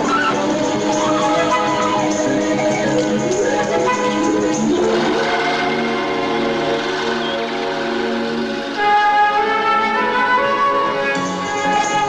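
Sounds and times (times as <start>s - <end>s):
orchestral sustained chord: 0.0s - 12.0s.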